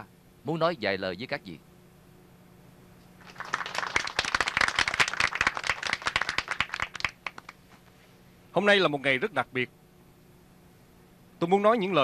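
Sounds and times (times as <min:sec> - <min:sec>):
group of people applauding: 0:03.2 - 0:07.6.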